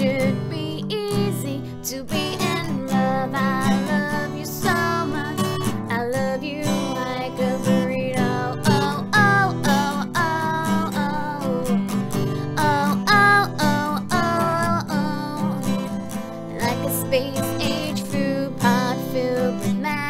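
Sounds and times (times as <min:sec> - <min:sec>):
strummed acoustic guitar: 0:00.0 - 0:20.0
woman singing: 0:00.0 - 0:20.0.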